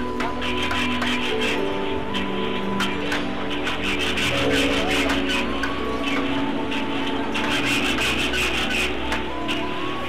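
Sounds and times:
rasp filing wood: 0.0 - 9.8.

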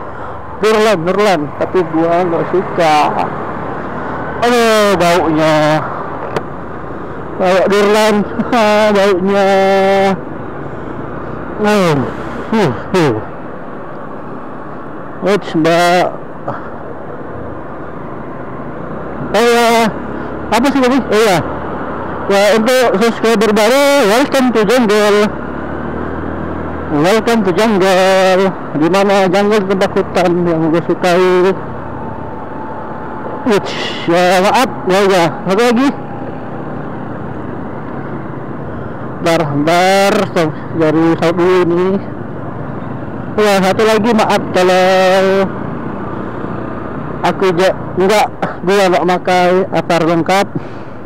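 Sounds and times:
wind and road noise: 0.0 - 51.0.

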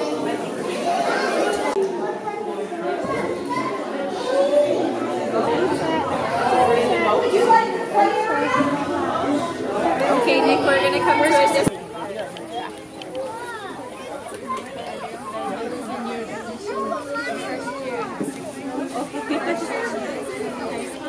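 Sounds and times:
children chattering: 0.0 - 21.0.

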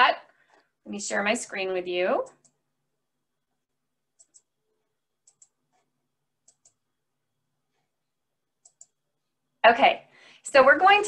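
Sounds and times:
computer mouse double-clicking: 6.4 - 6.8, 8.6 - 9.0.

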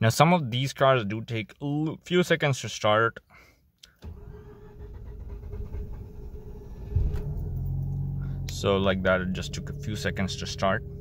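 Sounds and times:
starter cranking engine: 4.0 - 7.6.

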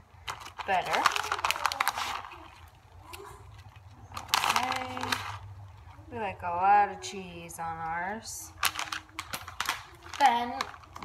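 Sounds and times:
plastic bag crinkling: 0.0 - 6.2, 8.2 - 11.0.

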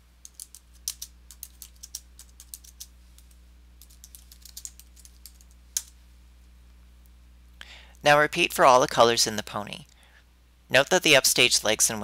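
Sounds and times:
typing on computer keyboard: 0.2 - 2.9, 3.8 - 5.9.

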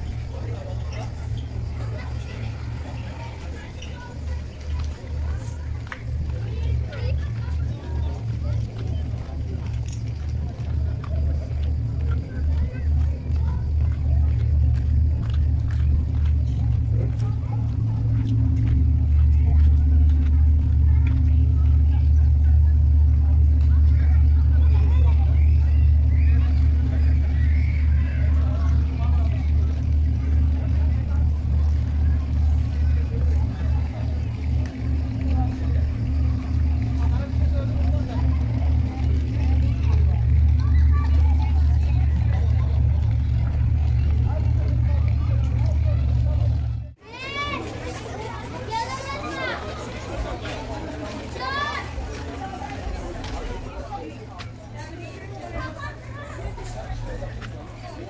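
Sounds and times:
deep ferry engine hum: 0.0 - 58.0.

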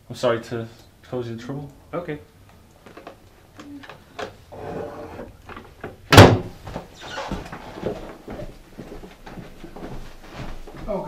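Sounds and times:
door banging shut: 6.1 - 7.4.

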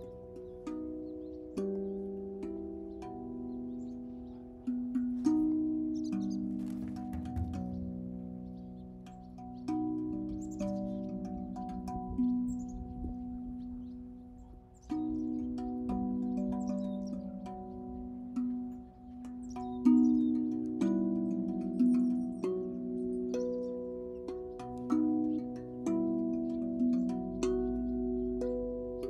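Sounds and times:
handpan melody: 0.0 - 29.0.

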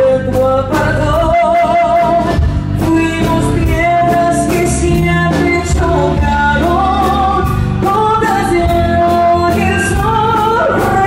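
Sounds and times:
bass guitar: 0.0 - 11.0
drums: 0.0 - 11.0
live band playing: 0.0 - 11.0
woman singing lead: 0.0 - 11.0.

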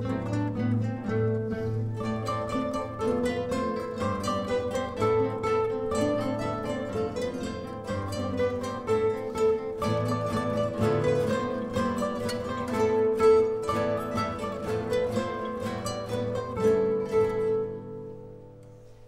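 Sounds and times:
guitar ensemble playing: 0.0 - 19.0.

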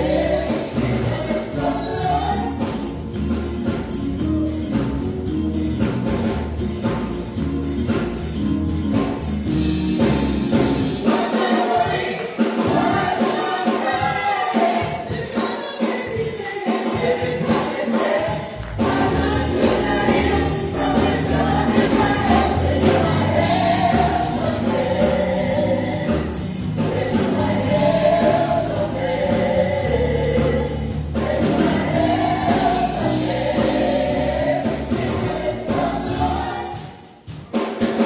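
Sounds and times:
electric bass: 0.0 - 11.0, 18.6 - 36.7
group singing gospel: 0.0 - 38.0
keyboard: 0.0 - 38.0.

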